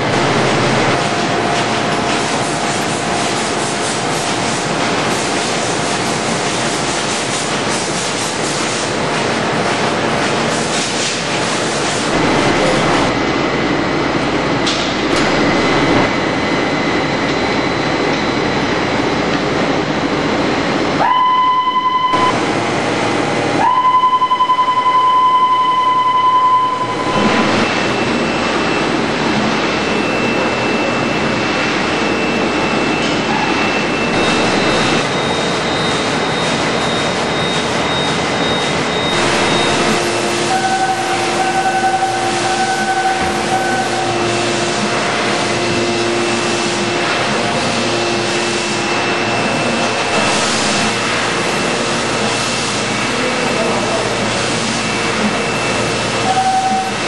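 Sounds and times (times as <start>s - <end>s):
die-cutting press clatter and rumble: 0.0s - 13.6s
high beep: 21.0s - 22.4s, 23.6s - 29.0s, 32.0s - 44.2s, 56.2s - 57.0s.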